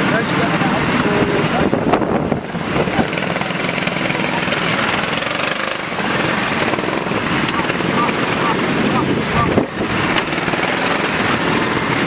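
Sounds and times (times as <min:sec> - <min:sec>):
voices: 0:00.0 - 0:11.2
loud pulsing engine: 0:00.0 - 0:12.0.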